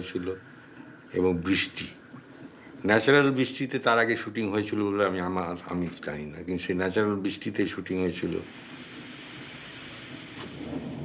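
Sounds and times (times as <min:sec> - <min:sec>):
rumbling of distant thunder: 0:08.7 - 0:11.0.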